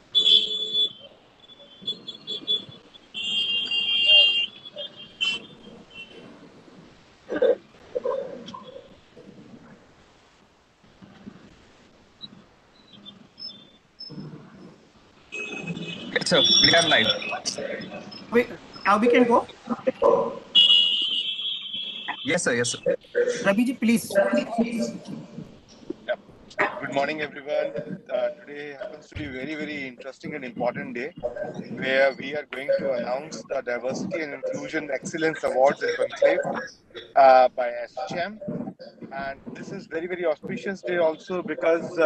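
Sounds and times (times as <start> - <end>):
high-pitched beeping tones: 15.4 - 20.0.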